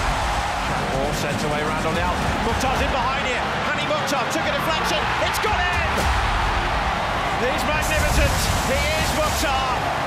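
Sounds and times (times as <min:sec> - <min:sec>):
background music: 0:00.0 - 0:10.0
crowd noise: 0:00.0 - 0:10.0.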